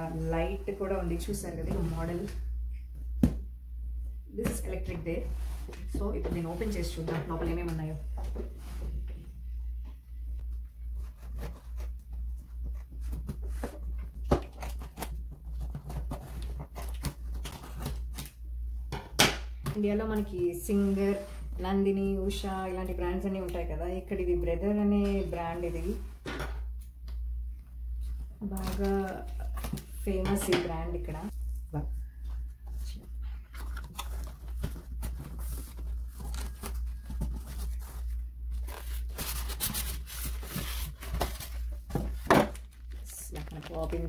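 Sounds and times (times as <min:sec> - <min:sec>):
cardboard and styrofoam rustling: 0:32.4 - 0:44.0.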